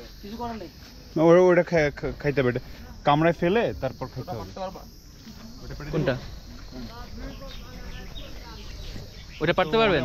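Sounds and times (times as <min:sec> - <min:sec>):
high-pitched insect chirring: 0:00.0 - 0:10.0
low voices: 0:05.4 - 0:10.0.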